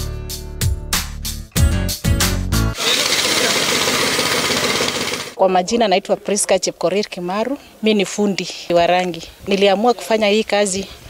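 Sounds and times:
power tool running with rattle: 2.8 - 5.4.

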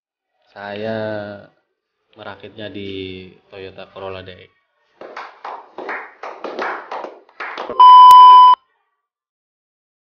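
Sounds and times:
people clapping: 5.0 - 8.0
electronic bleep: 7.8 - 8.6.

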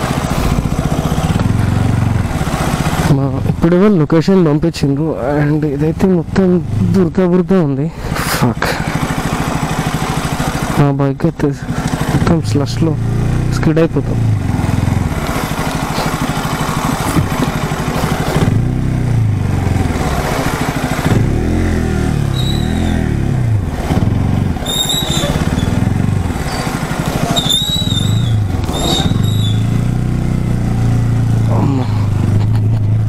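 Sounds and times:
motorcycle engine revving: 0.0 - 33.0
short high squeaks: 22.3 - 23.1, 24.6 - 25.8, 26.4 - 29.8.

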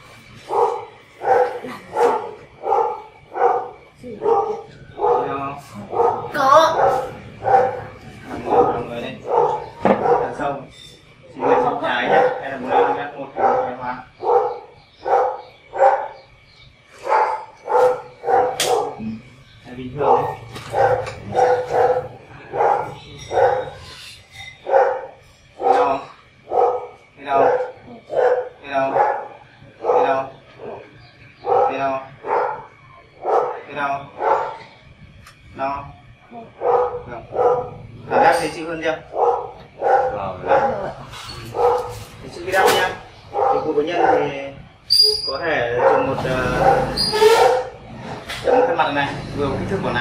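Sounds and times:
dog barking: 0.4 - 10.6, 11.4 - 16.3, 17.0 - 19.1, 20.0 - 23.9, 24.6 - 34.8, 36.5 - 44.4, 45.6 - 49.0.

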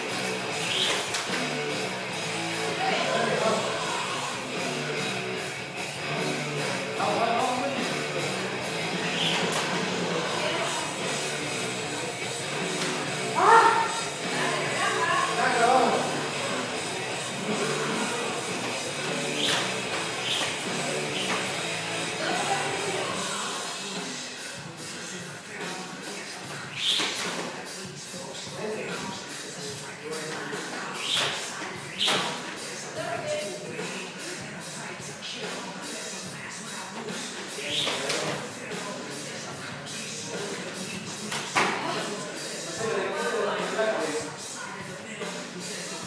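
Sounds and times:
rock music: 0.0 - 26.8.

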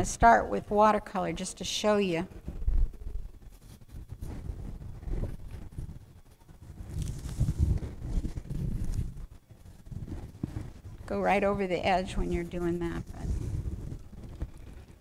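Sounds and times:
low rumbling and bumps: 2.4 - 15.0
brush scrubbing on canvas: 12.3 - 14.1.

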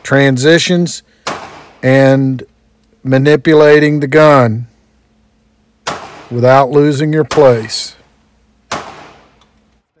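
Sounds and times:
pistol shot with echo: 1.2 - 1.8, 5.8 - 6.4, 7.2 - 7.9, 8.7 - 9.4.

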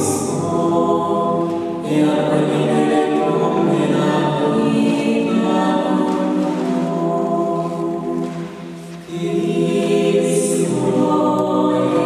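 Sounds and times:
vocal quartet singing in harmony: 0.0 - 12.0.

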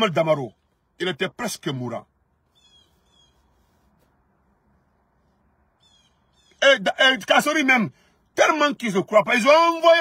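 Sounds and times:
faint bird chirps: 2.4 - 3.9, 5.8 - 6.6.

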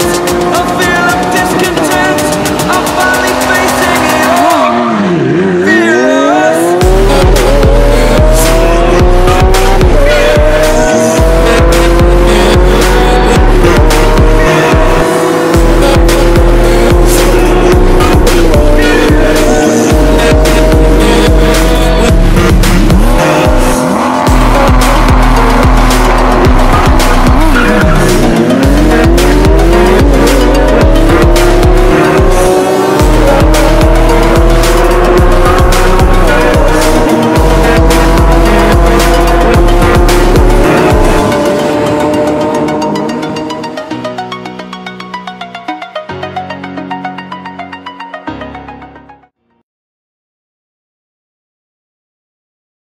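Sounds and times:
music with heavy bass beat: 0.0 - 5.1, 5.7 - 48.0
car engines accelerating hard: 0.0 - 44.2.

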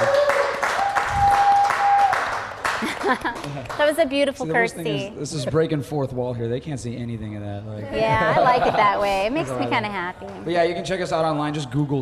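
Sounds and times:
rhythmic hand clapping: 0.0 - 4.1.

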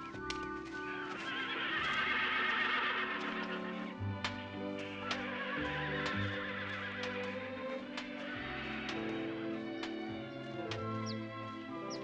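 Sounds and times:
horse whinnying: 0.8 - 10.0.

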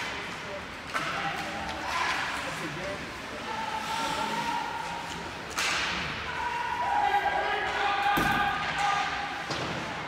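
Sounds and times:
rink crowd hubbub: 0.0 - 10.0.

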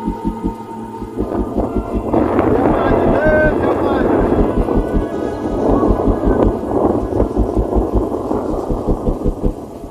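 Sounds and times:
pulsing low rumble: 0.0 - 9.9
wind buffeting microphone: 0.0 - 9.9.

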